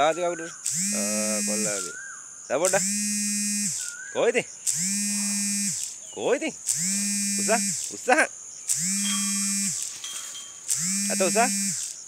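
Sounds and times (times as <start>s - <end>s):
high buzz of insects: 0.0s - 12.0s
man's long drawn-out call: 0.8s - 2.0s.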